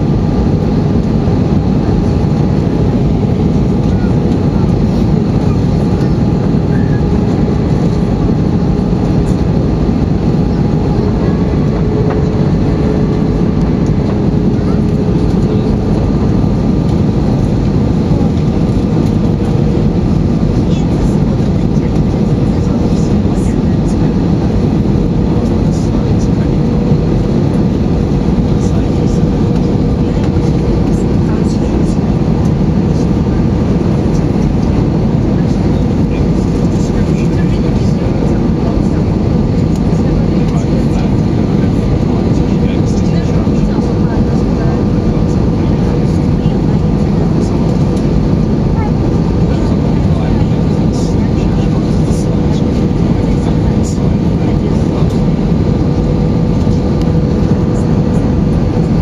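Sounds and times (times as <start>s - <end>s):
aircraft engines rumbling: 0.0s - 59.0s
steady hum: 0.0s - 59.0s.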